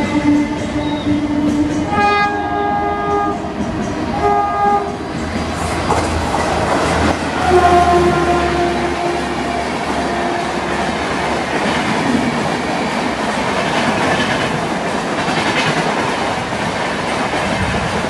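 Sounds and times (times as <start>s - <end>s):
locomotive horn: 0.0s - 5.1s, 7.0s - 11.4s
train wheels roaring on rails: 0.0s - 18.0s
clickety-clack over rail joints: 0.6s - 18.0s.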